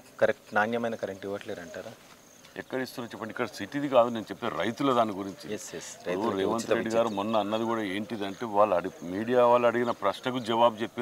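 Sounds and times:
insect chirring: 0.0s - 11.0s
man speaking: 0.2s - 2.0s, 2.6s - 11.0s.

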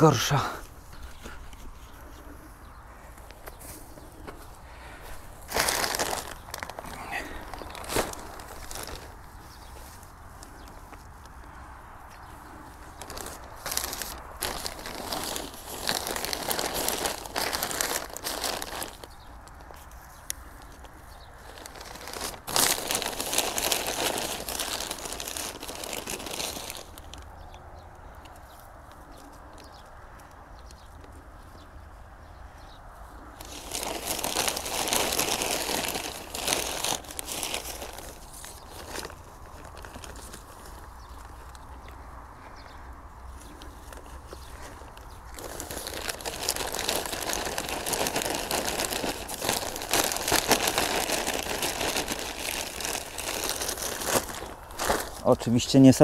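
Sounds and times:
plastic rustling and crinkling: 3.2s - 11.1s, 12.2s - 27.4s, 33.2s - 56.0s.

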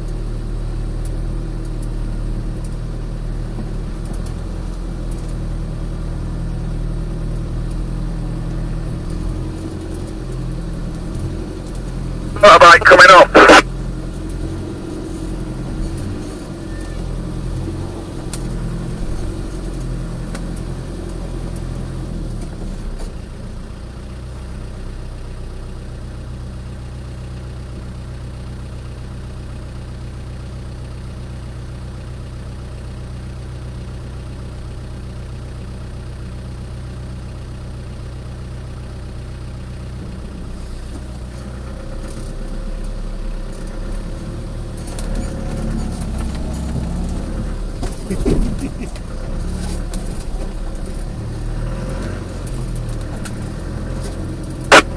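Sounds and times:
engine idling: 0.0s - 54.9s.

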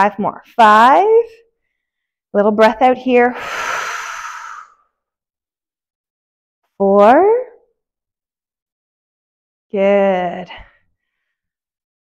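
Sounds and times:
person exhaling: 3.3s - 4.9s.

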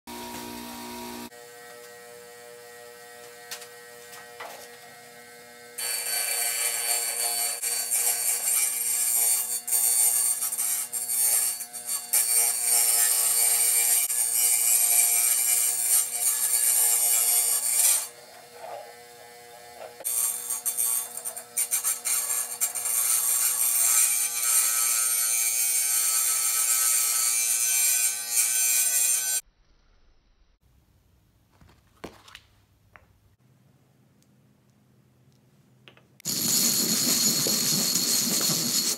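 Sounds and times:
tile saw motor humming: 0.1s - 10.5s, 11.5s - 23.8s, 36.2s - 38.9s
saw blade grinding into glass: 5.8s - 19.0s, 36.2s - 38.9s.

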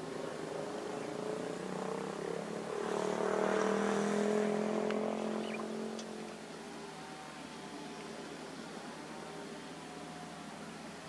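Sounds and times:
diesel engine drone: 0.0s - 11.0s.

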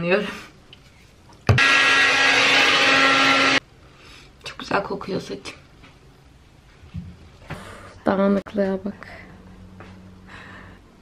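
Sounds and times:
hair dryer blowing: 1.5s - 3.6s.

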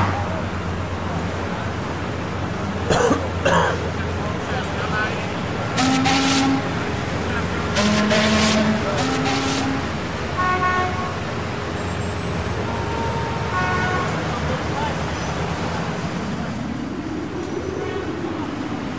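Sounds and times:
low traffic rumble: 0.0s - 18.9s
car horns honking: 5.7s - 6.9s, 7.5s - 11.3s, 11.9s - 14.4s.

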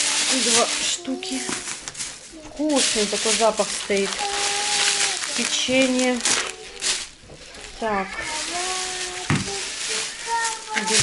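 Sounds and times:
plastic bags rustling: 0.0s - 11.0s.

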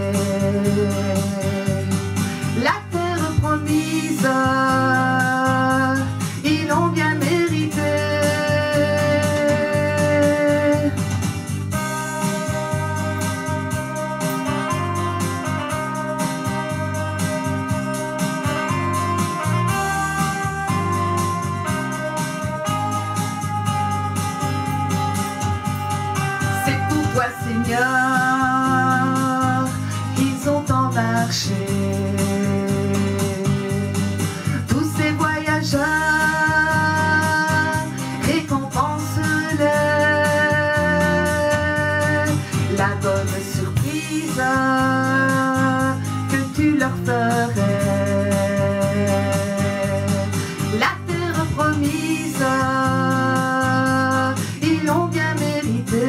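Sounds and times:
steady bass beat: 0.0s - 56.0s
organ-like keyboard chords: 3.8s - 55.1s.

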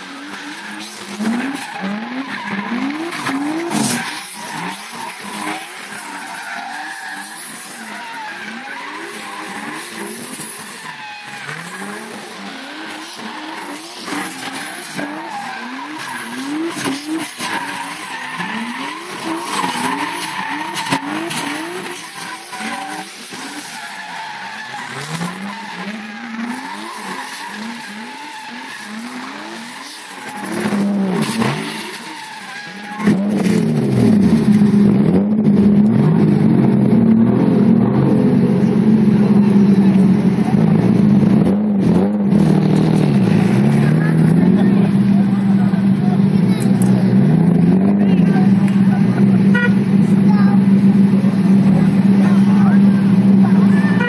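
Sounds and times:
tyres screeching: 0.0s - 34.8s
drift car engines revving: 0.0s - 54.0s.

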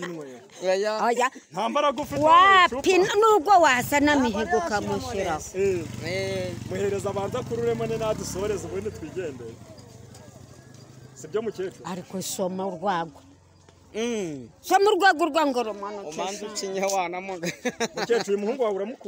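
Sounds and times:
excited voices talking loudly: 0.0s - 13.5s.

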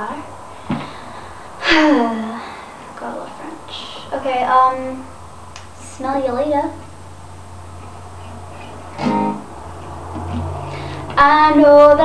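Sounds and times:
acoustic guitar played softly: 8.2s - 12.0s.

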